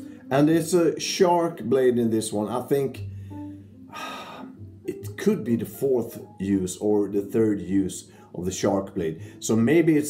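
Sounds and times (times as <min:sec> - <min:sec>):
man exhaling: 0:03.9 - 0:04.6.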